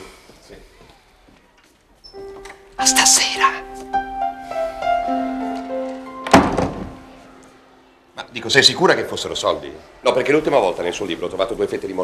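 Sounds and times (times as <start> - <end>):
soundtrack music of held notes: 2.8 - 8.0
wooden door thunk: 6.2 - 7.0.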